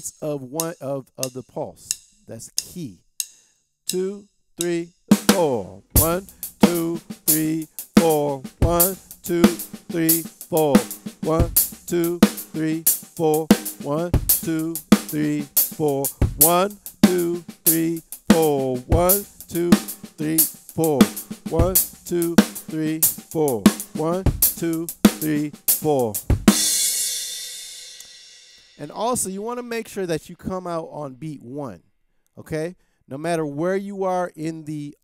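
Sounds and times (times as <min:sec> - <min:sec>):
paradiddle strokes on drums: 0:05.1 - 0:28.8
bass drum note: 0:05.3 - 0:26.5.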